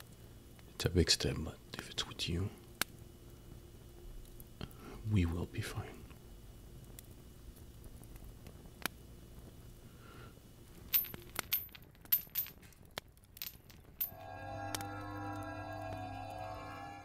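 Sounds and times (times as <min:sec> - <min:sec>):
sustained music chord: 0:14.1 - 0:17.0.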